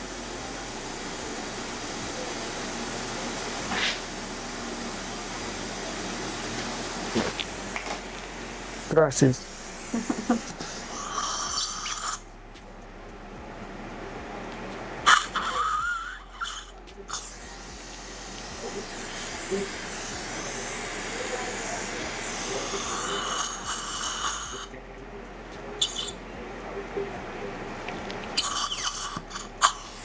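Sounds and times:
dental suction hissing: 0:00.0 - 0:12.3, 0:15.0 - 0:24.8, 0:25.8 - 0:26.2, 0:28.3 - 0:30.0
loud slurp with squeal: 0:11.2 - 0:12.2.

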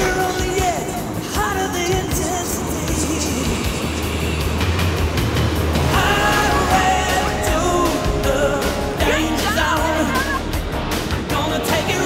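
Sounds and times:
ocean surf breaking: 0:00.0 - 0:12.0.

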